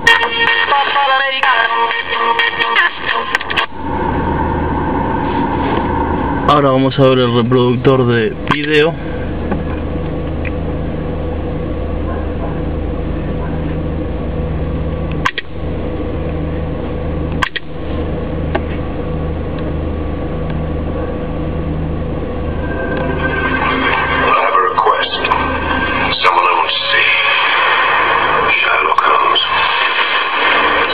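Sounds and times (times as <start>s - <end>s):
film trailer soundtrack on small speaker: 0.0s - 30.9s
low electrical hum: 1.1s - 30.9s
sharp clicks: 15.1s - 15.5s, 17.4s - 17.7s.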